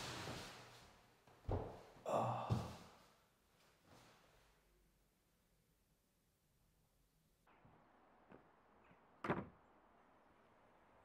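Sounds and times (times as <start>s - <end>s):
man sighing: 2.0s - 3.0s.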